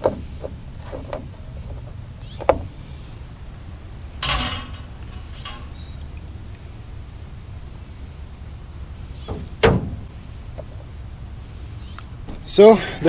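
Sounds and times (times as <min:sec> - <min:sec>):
steady low rumble: 0:00.0 - 0:13.0
sharp metal clank: 0:04.2 - 0:05.9.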